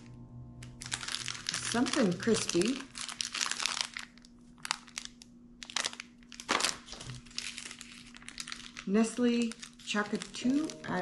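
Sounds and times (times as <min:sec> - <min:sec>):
wrappers and tissue paper crinkling: 0:00.6 - 0:11.0.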